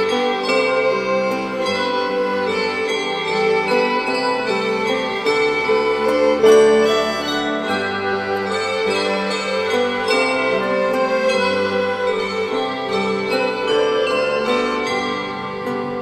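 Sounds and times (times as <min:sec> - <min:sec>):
tuned bells ringing: 0:00.0 - 0:16.0.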